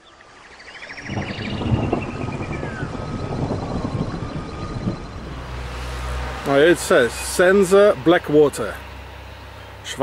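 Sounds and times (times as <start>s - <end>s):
faint bird trill and whistles: 0.0s - 5.3s.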